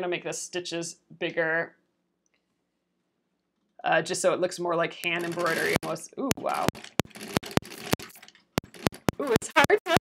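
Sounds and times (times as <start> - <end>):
sewing machine needle clicks: 5.0 - 9.4.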